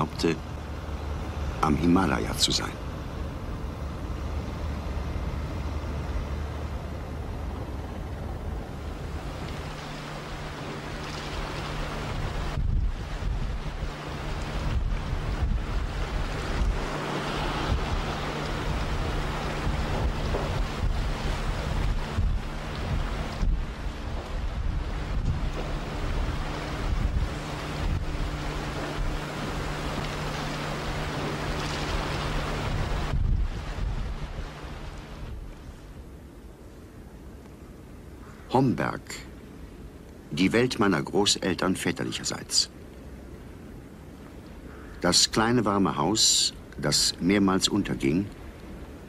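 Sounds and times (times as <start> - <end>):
boat engine humming: 0.0 - 49.0
waves splashing: 0.0 - 49.0
gusty wind buffeting microphone: 2.6 - 38.2.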